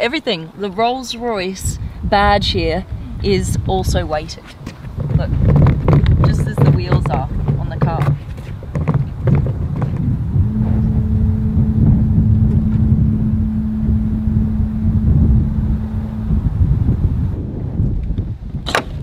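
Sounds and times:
low rumble: 9.2 - 18.6
electric motor hum: 9.9 - 17.4.

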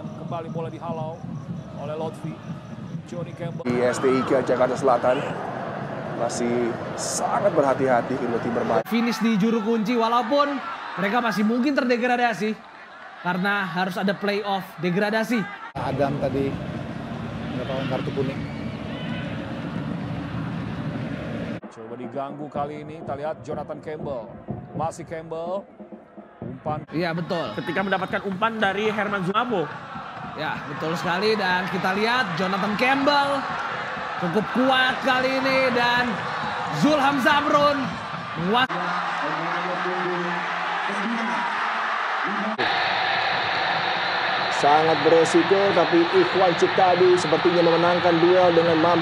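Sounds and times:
brighter crowd sound: 0.0 - 49.0
stadium crowd noise: 0.0 - 49.0.

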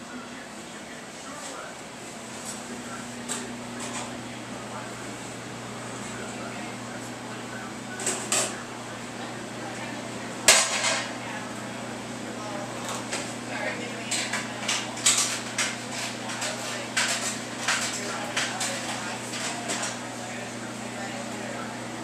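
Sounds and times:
kitchen equipment humming: 0.0 - 22.0
metal pans and utensils clattering: 10.4 - 11.2, 14.0 - 20.0.

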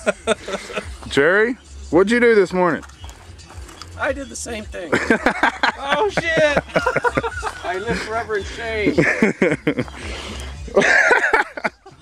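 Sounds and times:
person laughing or shouting: 4.9 - 9.8.

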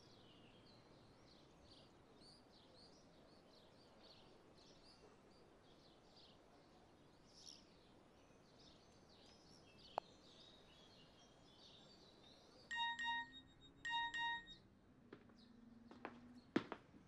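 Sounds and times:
faint birdsong: 0.0 - 14.6
phone alert double beeps: 12.7 - 14.6.

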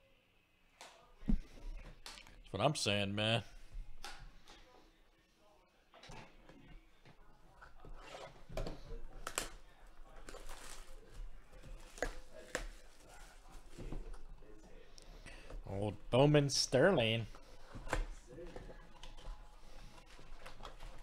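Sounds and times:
plastic wrap crinkling: 9.2 - 13.8.

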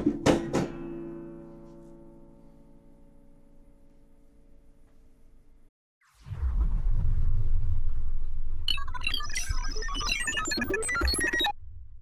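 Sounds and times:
deep rumble: 6.2 - 8.9.

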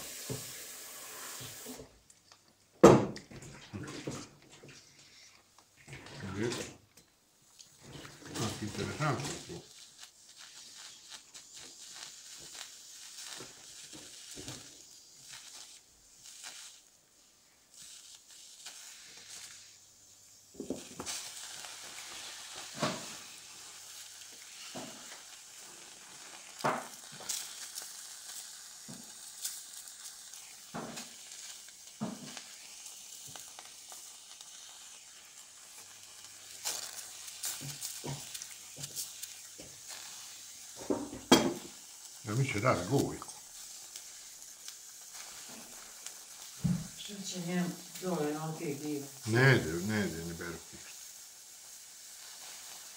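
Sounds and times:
mushrooms sizzling on foil: 0.0 - 52.9
sharp pops and crackles: 4.6 - 52.9.

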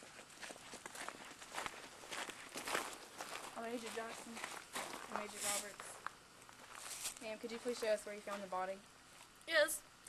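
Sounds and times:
footsteps on gravel: 0.0 - 9.4.

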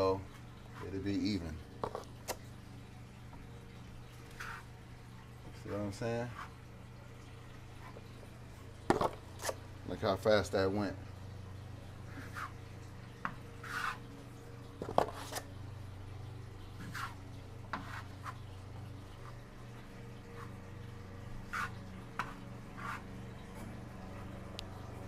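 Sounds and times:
steady low hum: 0.0 - 25.0
taping knife scraping compound: 13.6 - 14.0, 21.5 - 23.2.

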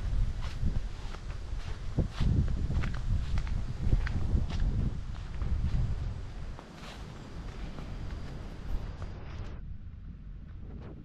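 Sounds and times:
footsteps on dirt path: 0.0 - 11.0
wind rumble on microphone: 0.0 - 11.0.

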